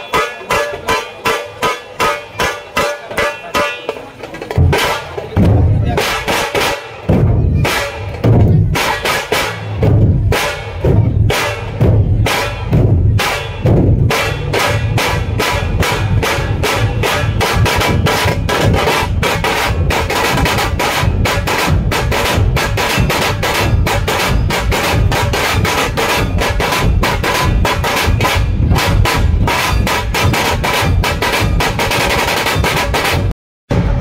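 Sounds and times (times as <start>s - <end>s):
fast steady drumming: 0.0s - 34.0s.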